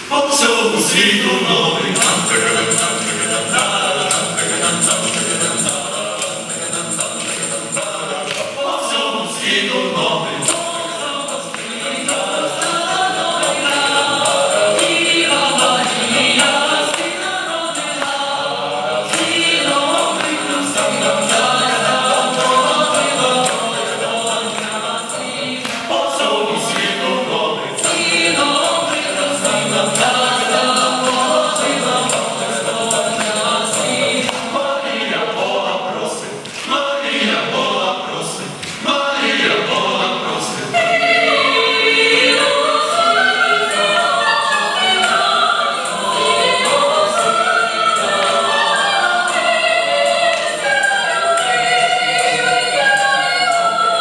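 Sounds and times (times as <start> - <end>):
mixed choir singing a cappella: 0.0 - 54.0.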